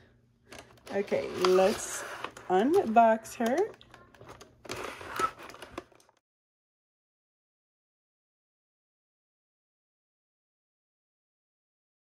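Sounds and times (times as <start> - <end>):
plastic packaging crinkling: 0.5 - 6.2.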